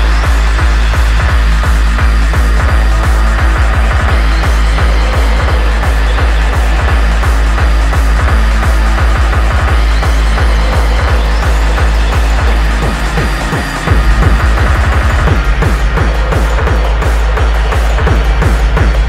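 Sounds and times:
fast kick drum: 0:00.0 - 0:19.0
heavy bass: 0:00.0 - 0:19.0
synth layers: 0:00.0 - 0:19.0.

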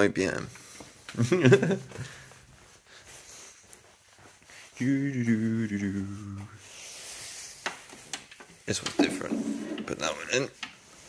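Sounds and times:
soft rubbing and handling noise: 0:00.1 - 0:11.0.

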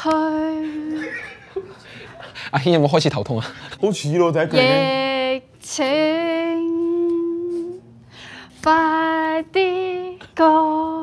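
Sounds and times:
woman singing long note: 0:04.6 - 0:07.8.

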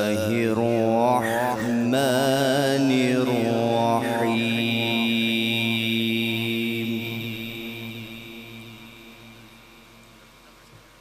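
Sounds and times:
man reciting melodically: 0:00.0 - 0:09.9.

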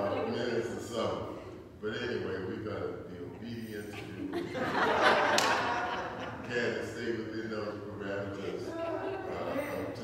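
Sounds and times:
man giving a sermon: 0:00.0 - 0:04.4, 0:06.3 - 0:10.0.

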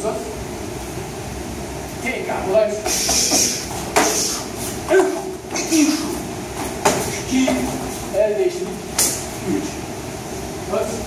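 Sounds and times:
karate strikes slapping: 0:02.9 - 0:06.0, 0:06.6 - 0:07.8, 0:08.9 - 0:09.3.

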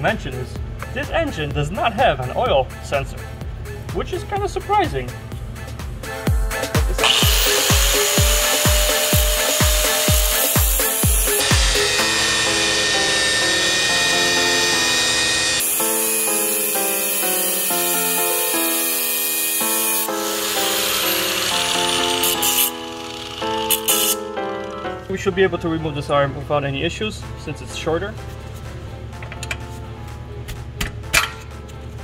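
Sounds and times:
electronic music with thumping beat: 0:05.1 - 0:12.1
angle grinder cutting steel: 0:07.0 - 0:24.8.

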